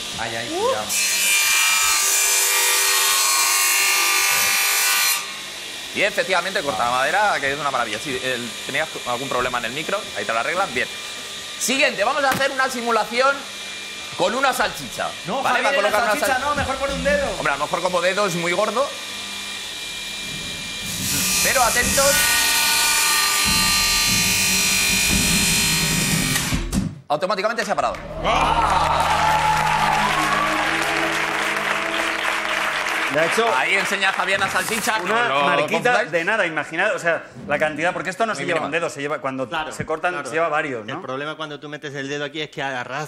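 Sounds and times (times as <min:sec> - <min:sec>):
circular saw cutting wood: 0:00.1 - 0:26.7.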